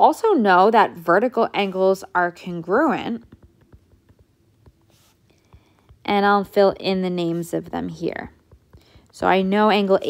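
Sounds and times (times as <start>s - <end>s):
stylus writing on glass screen: 1.6s - 10.0s.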